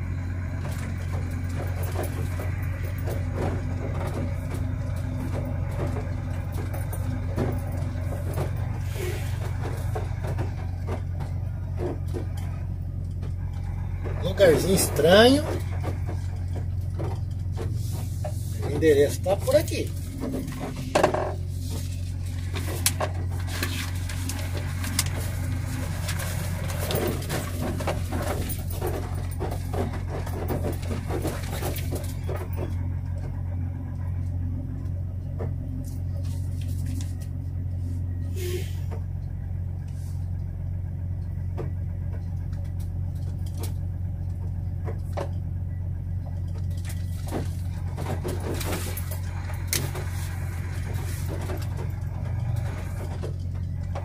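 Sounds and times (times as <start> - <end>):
cab clattering and rattling: 0.0 - 38.2, 38.9 - 54.0
diesel engine low drone: 0.0 - 54.0.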